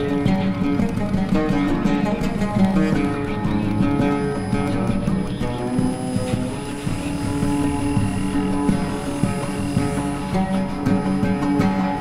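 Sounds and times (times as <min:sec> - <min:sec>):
oud plucked low: 0:00.0 - 0:12.0
sustained drone: 0:02.4 - 0:12.0
shortwave radio noise: 0:02.6 - 0:12.0
thin steady whistling tones: 0:02.6 - 0:12.0.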